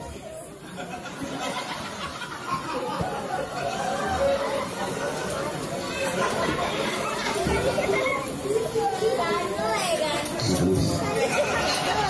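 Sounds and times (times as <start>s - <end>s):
background voices talking: 2.9s - 12.0s
man speaking over loudspeaker: 10.4s - 11.2s.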